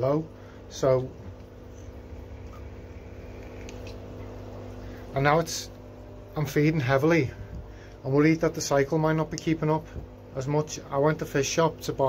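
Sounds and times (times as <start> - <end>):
aquarium air pump humming: 0.0 - 12.0
bubbling of sponge filters: 0.5 - 6.3.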